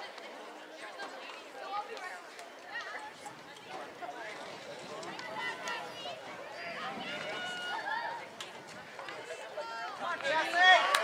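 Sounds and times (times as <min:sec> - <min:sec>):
people calling and shouting: 0:00.0 - 0:11.0.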